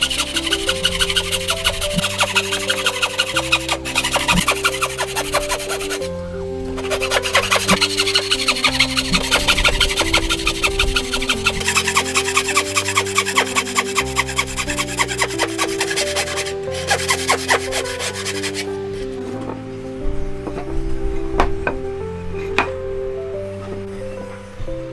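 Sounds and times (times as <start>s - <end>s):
hand saw cutting wood: 0.0s - 6.1s, 6.8s - 18.7s
background music: 0.0s - 24.9s.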